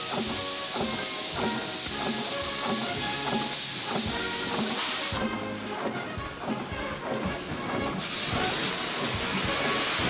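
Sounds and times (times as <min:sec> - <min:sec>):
march music: 0:00.0 - 0:10.0.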